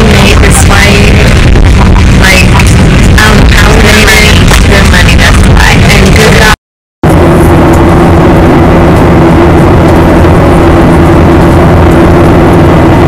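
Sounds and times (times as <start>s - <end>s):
airliner cabin drone: 0.0s - 13.0s.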